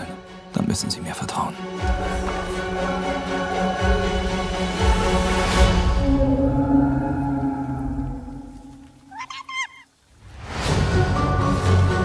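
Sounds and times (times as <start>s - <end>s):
film score music: 0.0s - 9.3s, 10.0s - 12.0s
animal high-pitched calls: 9.1s - 9.9s.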